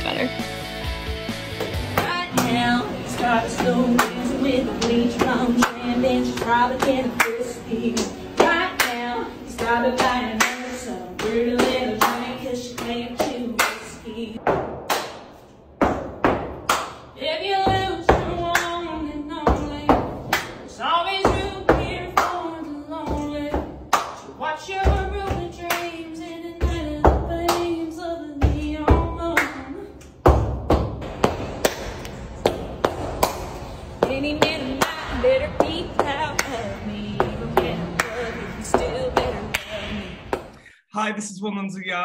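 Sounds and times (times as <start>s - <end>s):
woman singing: 1.9s - 14.4s, 17.2s - 30.0s, 34.0s - 40.6s.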